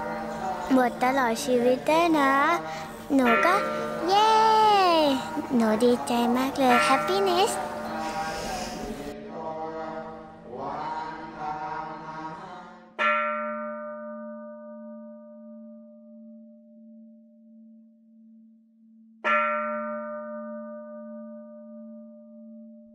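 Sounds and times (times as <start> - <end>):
voices chanting: 0.0 - 12.9
bell ringing: 3.1 - 8.5.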